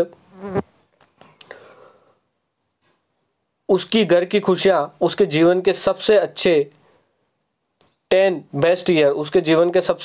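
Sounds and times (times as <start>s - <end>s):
faint breath: 1.3s - 3.1s, 6.8s - 7.4s.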